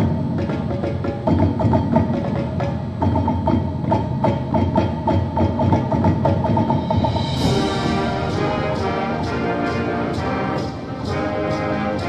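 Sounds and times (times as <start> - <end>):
marching drums: 0.0 - 12.0.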